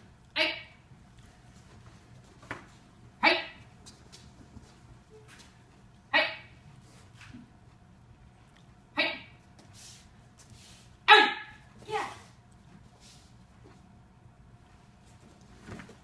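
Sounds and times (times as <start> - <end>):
boy shouting: 11.1 - 12.2.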